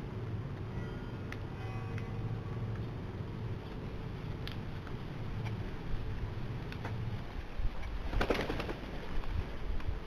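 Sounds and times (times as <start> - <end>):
bird wing flaps: 7.9 - 9.6.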